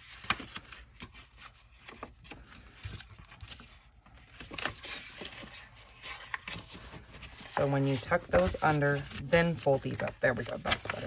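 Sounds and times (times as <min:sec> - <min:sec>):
paper rustling and folding: 0:00.0 - 0:11.0.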